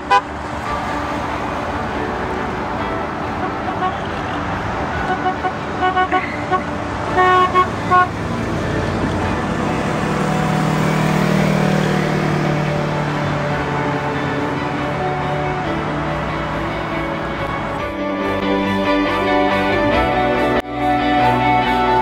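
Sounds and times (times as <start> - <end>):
car horn toots: 0.0 - 0.3, 3.3 - 8.5
vehicle driving past: 4.0 - 20.6.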